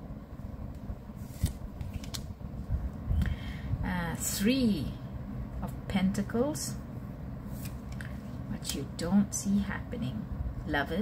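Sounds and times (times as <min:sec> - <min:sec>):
cards rustling and sliding: 0:01.2 - 0:02.3, 0:07.5 - 0:08.4.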